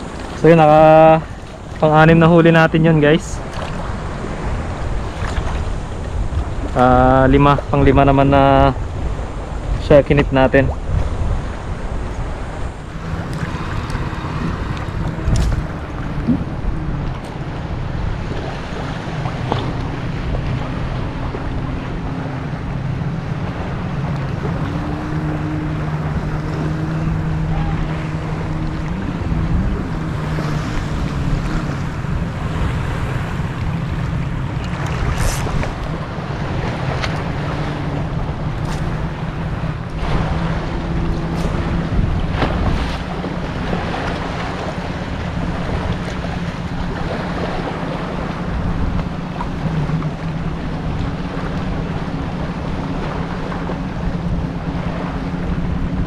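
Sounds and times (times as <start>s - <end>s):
small waves lapping: 0.0s - 56.0s
water splashes: 0.0s - 56.0s
wind buffeting microphone: 0.0s - 56.0s.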